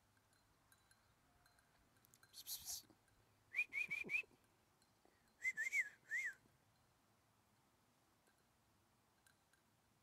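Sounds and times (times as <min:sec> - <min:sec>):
person whistling breathy chirps: 0:05.4 - 0:06.4.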